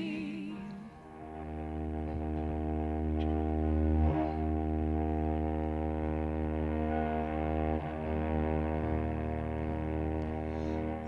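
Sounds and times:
low sustained instrumental drone: 0.0s - 11.0s.

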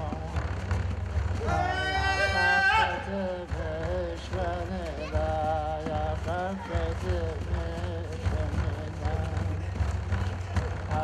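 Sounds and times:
frame drum beating: 0.0s - 11.0s
person singing a chant: 0.0s - 11.0s.

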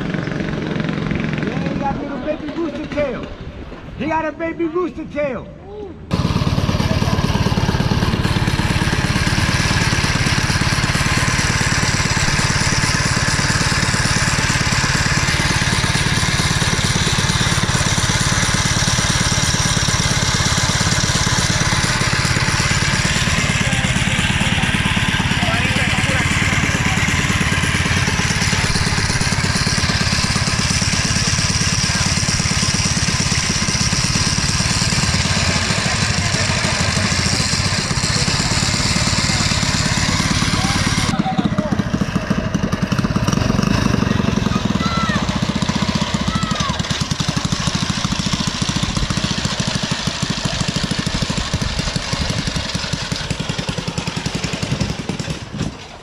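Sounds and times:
small engine running loudly: 0.0s - 3.6s, 6.1s - 56.0s.

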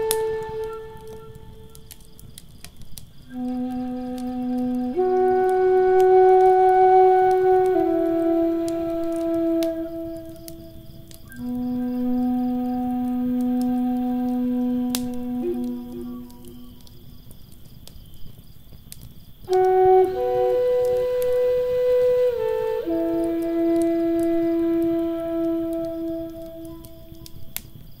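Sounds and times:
flute playing long notes: 0.0s - 2.3s, 3.2s - 17.2s, 19.5s - 27.7s
wood fire crackling: 0.0s - 28.0s.

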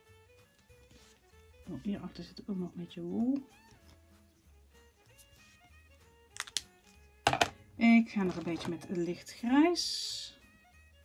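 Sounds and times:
faint background music: 0.0s - 11.0s
marker pens clicking: 6.3s - 6.7s.

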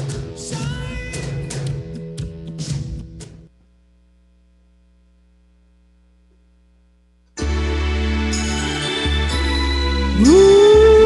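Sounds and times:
music: 0.0s - 3.5s, 7.4s - 11.0s
faint electrical mains hum: 3.5s - 7.4s.

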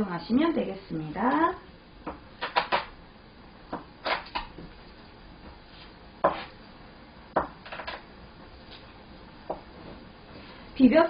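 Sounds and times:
knife striking cutting board: 6.2s - 6.5s.

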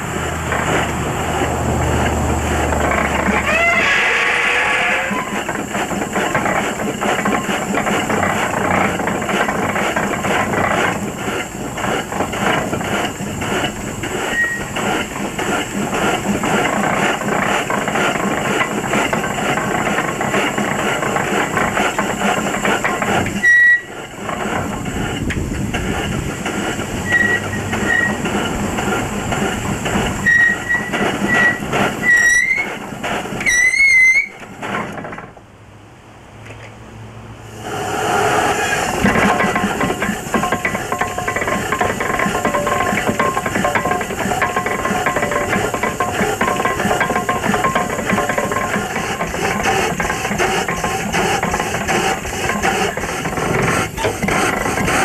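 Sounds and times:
escaping steam: 0.0s - 35.2s, 37.4s - 55.0s
steam hoist exhaust beats: 0.0s - 35.5s, 37.4s - 55.0s.

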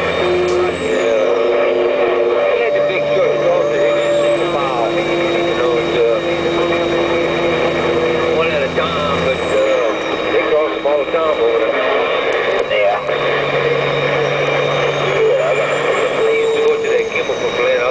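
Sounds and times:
diesel truck engine: 0.0s - 17.9s
road noise: 0.0s - 17.9s.

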